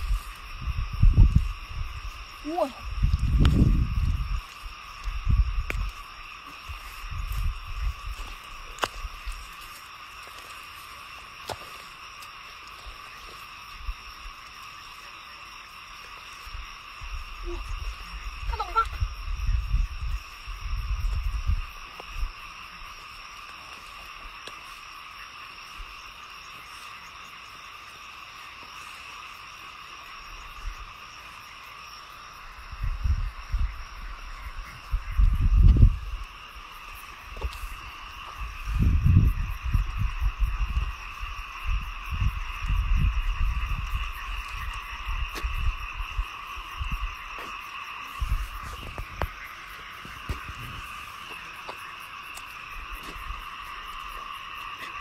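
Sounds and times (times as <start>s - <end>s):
chorus of small calling animals: 17.2s - 19.6s.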